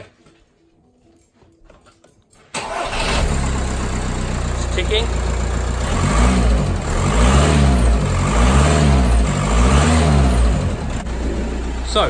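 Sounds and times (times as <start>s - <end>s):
diesel engine idling and revving: 2.6s - 12.0s.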